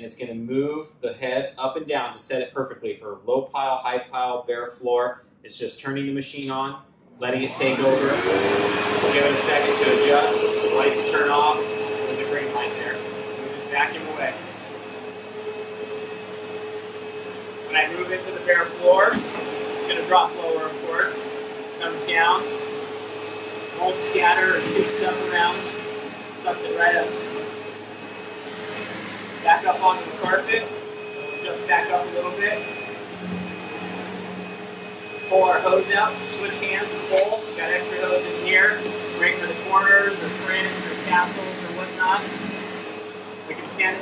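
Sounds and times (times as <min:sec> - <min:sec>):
vacuum cleaner whirring: 0:07.2 - 0:44.0.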